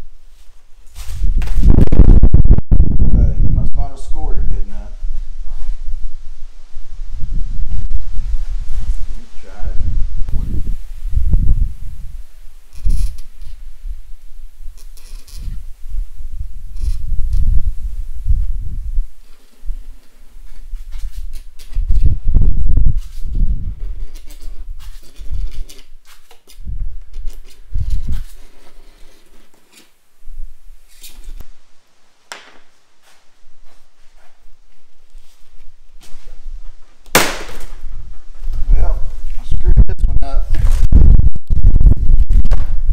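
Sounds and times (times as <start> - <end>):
plastic sheet snapping: 37.1 - 37.8.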